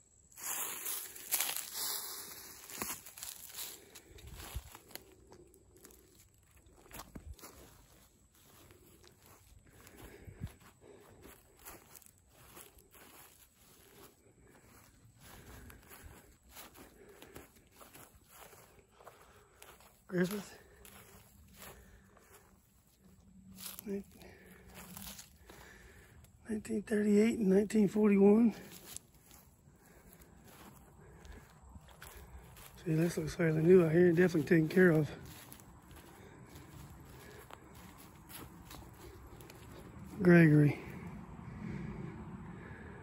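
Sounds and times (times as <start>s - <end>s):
footsteps on grass and dry leaves: 0.0s - 43.0s.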